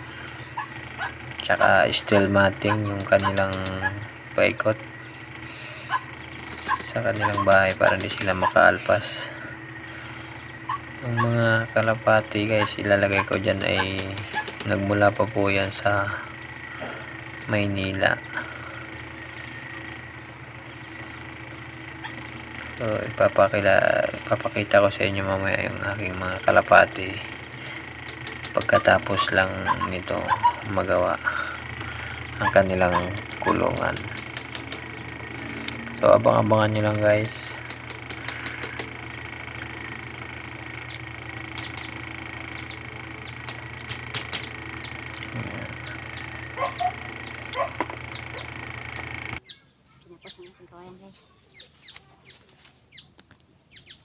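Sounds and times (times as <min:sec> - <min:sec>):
faint steady hum: 0:00.0 - 0:49.4
insects chirping: 0:00.0 - 0:50.9
birds chirping: 0:00.0 - 0:54.0
light clicks on bamboo cage: 0:06.4 - 0:08.3, 0:27.5 - 0:28.9
high chirps: 0:25.5 - 0:50.5.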